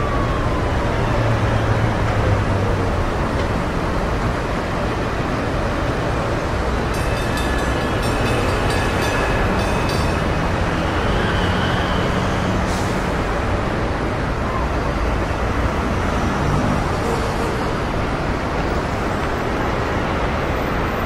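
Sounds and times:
siren wailing: 0.0 - 2.0
traffic roar: 0.0 - 21.0.

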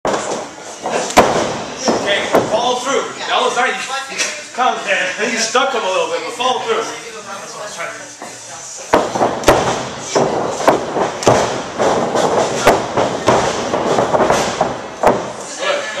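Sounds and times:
sharp thuds and slaps of punches: 1.1 - 2.6, 8.9 - 15.4.

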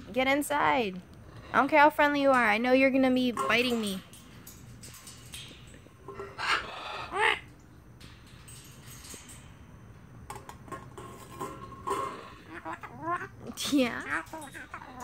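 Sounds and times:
corellas calling: 6.0 - 7.6, 11.8 - 15.0.

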